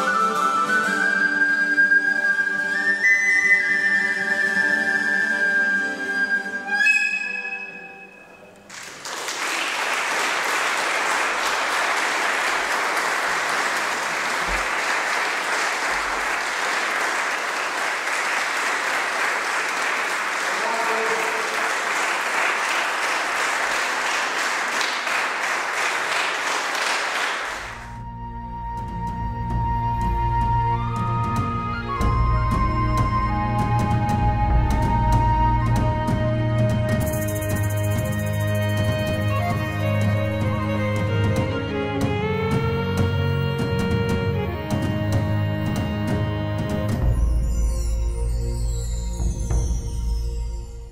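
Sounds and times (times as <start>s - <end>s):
flute and plucked strings: 0.0s - 8.6s, 27.8s - 50.9s
audience applauding: 8.5s - 28.0s.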